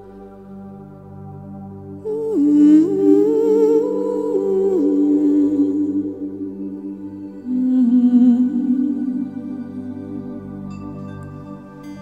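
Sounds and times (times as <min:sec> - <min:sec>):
ambient new-age music: 0:00.0 - 0:12.0
wordless hummed melody: 0:00.0 - 0:12.0.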